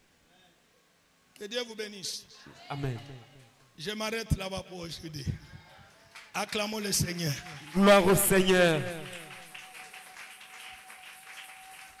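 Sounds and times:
people applauding: 0:05.9 - 0:12.0.

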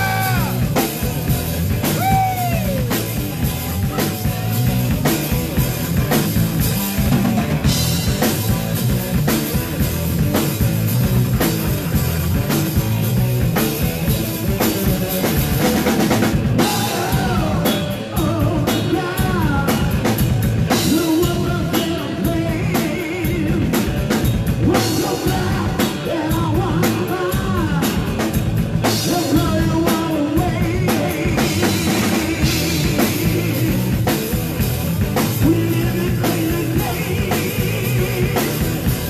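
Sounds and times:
drum kit kick and snare: 0:00.0 - 0:18.4
electric guitar: 0:00.0 - 0:39.0.

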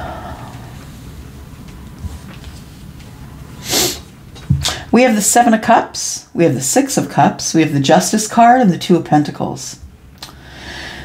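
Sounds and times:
woman sniffing: 0:03.6 - 0:04.9
woman speaking: 0:04.8 - 0:09.8.

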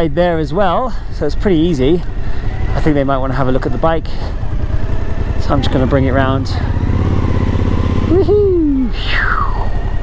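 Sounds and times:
motorcycle engine low rumble: 0:00.0 - 0:10.0.

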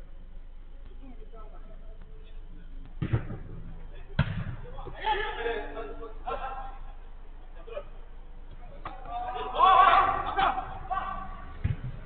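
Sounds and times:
football kicked thuds: 0:02.8 - 0:04.7, 0:11.6 - 0:12.0.

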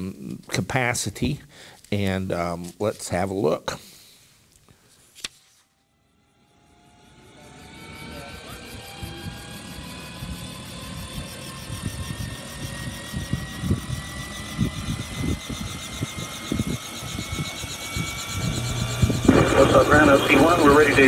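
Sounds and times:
electric whine rising: 0:05.8 - 0:21.0
rotor chop: 0:16.6 - 0:21.0
low thumps: 0:18.1 - 0:20.7.

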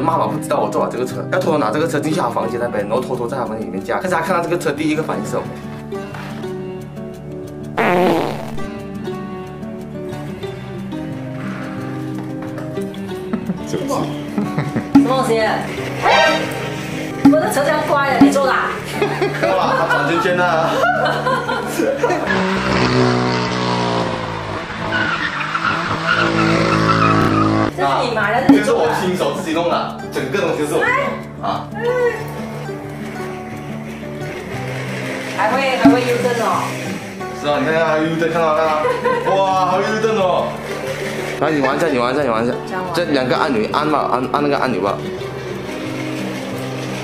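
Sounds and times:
slow melodic background music: 0:00.0 - 0:47.0
tyres squealing: 0:15.0 - 0:18.8, 0:22.0 - 0:27.7, 0:31.7 - 0:42.0
toy car electric motor whir: 0:22.2 - 0:27.7, 0:32.2 - 0:39.0, 0:40.4 - 0:41.4, 0:45.3 - 0:47.0
car engine at high revs: 0:22.3 - 0:27.7.

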